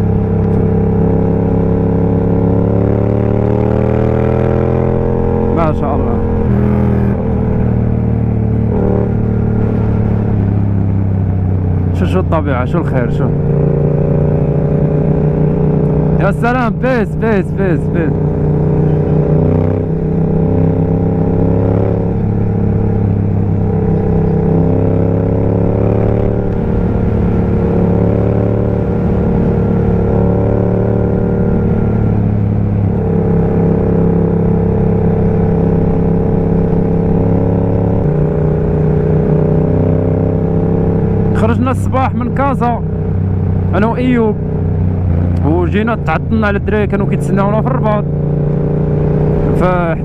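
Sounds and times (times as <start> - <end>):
motorcycle engine cruising: 0.0 - 50.0.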